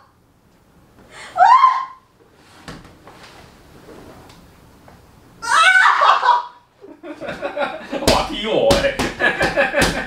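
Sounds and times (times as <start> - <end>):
hand slapping leg: 7.3 - 10.0.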